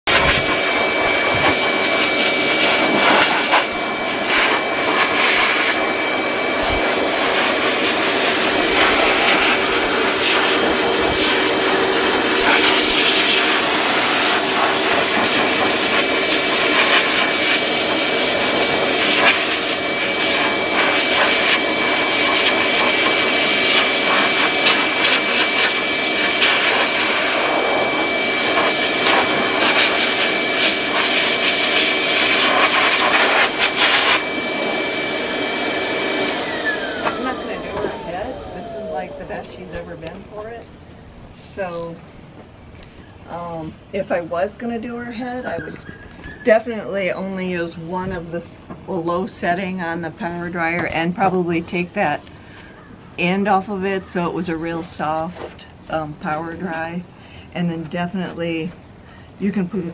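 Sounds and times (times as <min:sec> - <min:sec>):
power dryer blowing air: 0:00.0 - 0:40.7.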